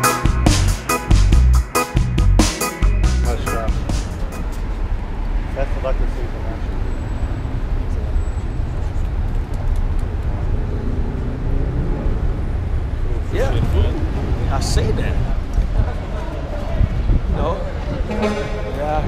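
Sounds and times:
city traffic rumble: 0:00.0 - 0:19.0
faint voices: 0:13.2 - 0:19.0.

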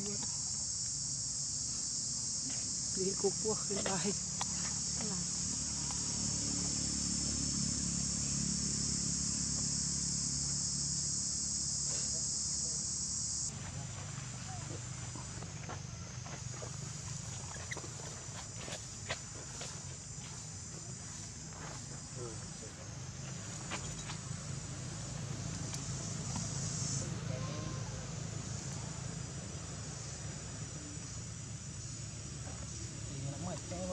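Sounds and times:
insects chirring: 0:00.0 - 0:33.9.

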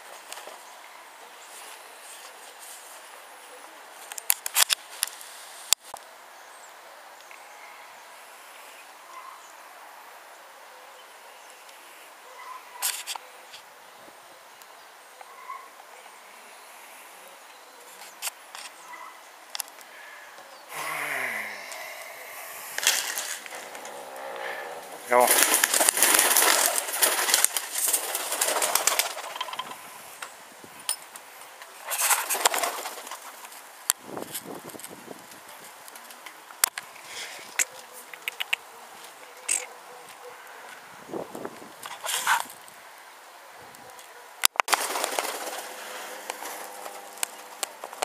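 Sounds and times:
pigeons: 0:10.6 - 0:30.3, 0:31.1 - 0:33.7, 0:43.5 - 0:48.0
pigeon wings flapping: 0:25.2 - 0:29.7, 0:31.9 - 0:33.6, 0:44.7 - 0:48.0
sharp clicks: 0:38.1 - 0:38.6, 0:44.4 - 0:44.8.

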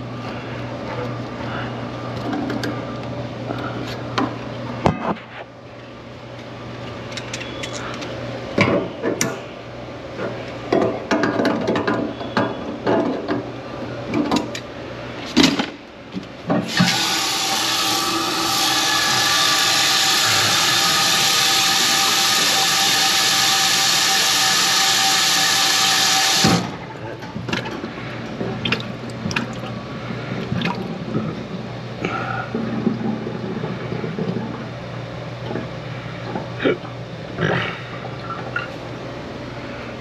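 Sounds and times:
faucet running into steel sink: 0:16.7 - 0:26.6.

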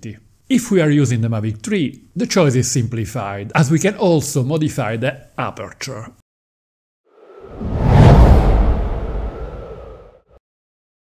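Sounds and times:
whoosh with deep rumble: 0:07.1 - 0:10.4.

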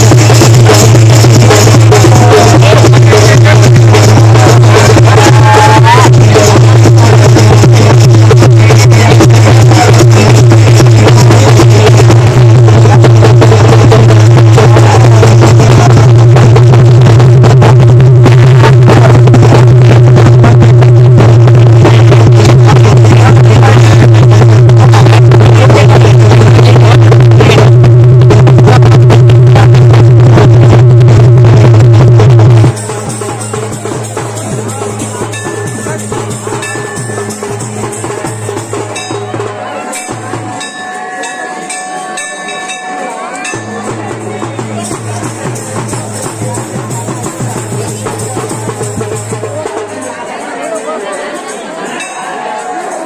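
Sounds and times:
loud distorted festival drumming: 0:00.0 - 0:53.0.

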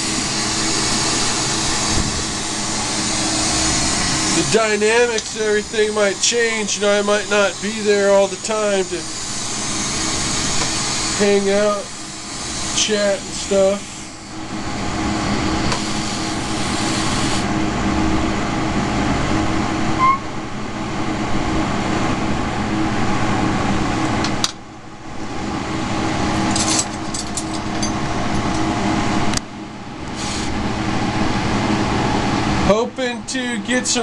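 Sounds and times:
torch burning with rushing hiss: 0:00.0 - 0:17.5, 0:30.1 - 0:30.6.

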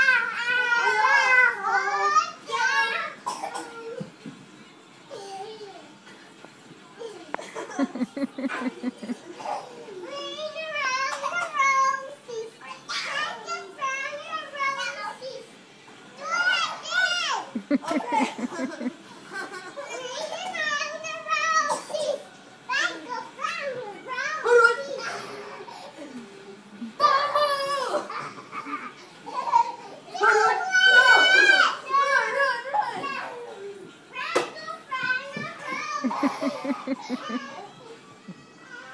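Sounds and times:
children squealing and shouting: 0:00.0 - 0:04.1, 0:09.4 - 0:15.5, 0:16.2 - 0:18.4, 0:19.7 - 0:25.9, 0:27.0 - 0:38.9.

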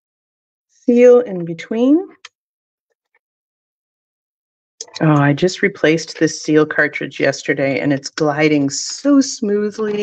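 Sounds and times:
person speaking: 0:04.8 - 0:06.3.

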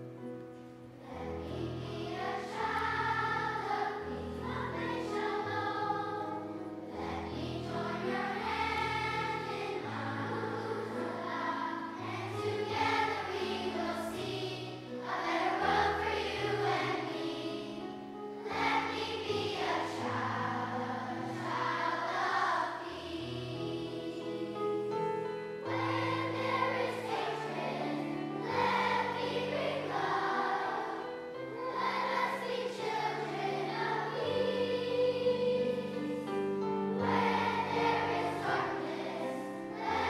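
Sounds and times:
children's choir singing: 0:00.0 - 0:40.0.

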